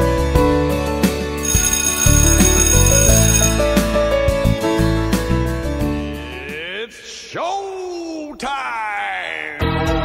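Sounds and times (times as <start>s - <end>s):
high ringing signal: 1.4s - 3.9s.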